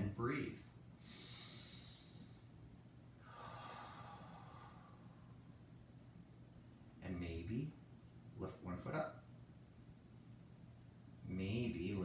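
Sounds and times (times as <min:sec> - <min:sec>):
man breathing: 0:01.0 - 0:02.6, 0:03.2 - 0:05.6.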